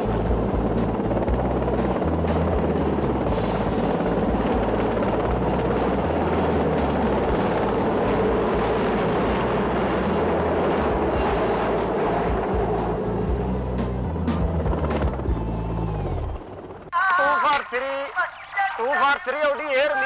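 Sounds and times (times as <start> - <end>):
music playing: 0.0 - 16.7
loud mechanical drone: 0.0 - 16.9.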